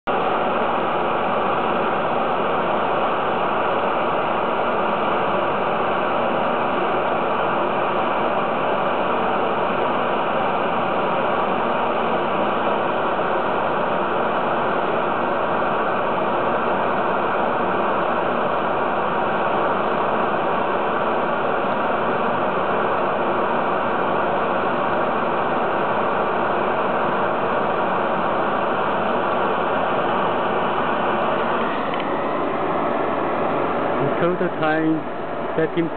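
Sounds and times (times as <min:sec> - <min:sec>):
laser engraving machine running: 0:00.1 - 0:35.9.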